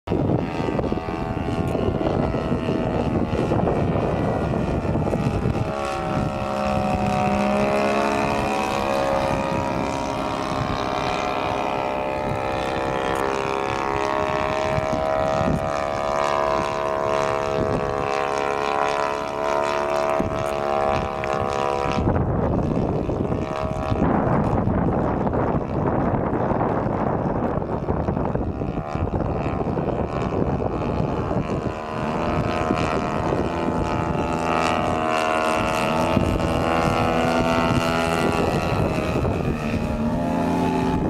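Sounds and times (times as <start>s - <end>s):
model airplane engine droning: 0.1s - 41.0s.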